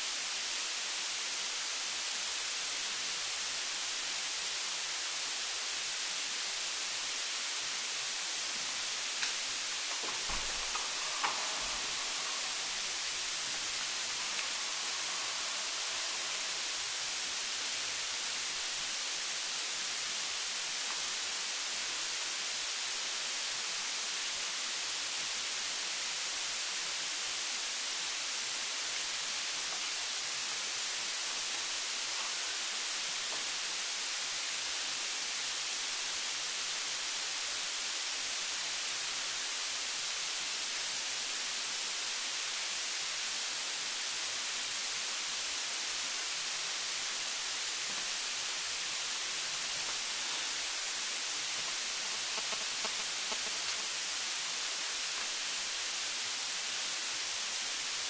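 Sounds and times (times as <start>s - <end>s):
steady hiss: 0.0s - 58.0s
faint clicks: 9.2s - 16.8s, 51.5s - 53.9s.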